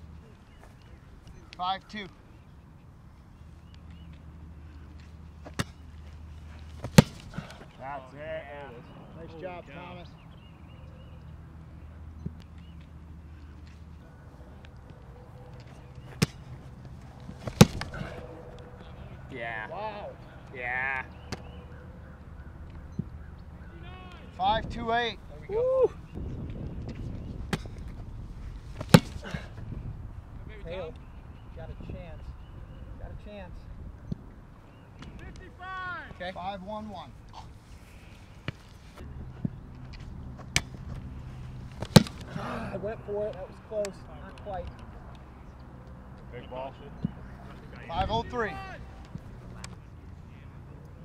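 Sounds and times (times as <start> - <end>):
foot striking football: 5.4 - 5.9, 6.5 - 7.7, 16.0 - 18.3, 28.7 - 29.7, 40.3 - 41.1, 41.7 - 42.4.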